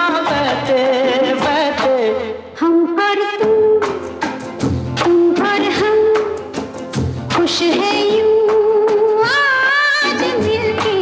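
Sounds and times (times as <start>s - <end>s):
light musical accompaniment: 0.0s - 11.0s.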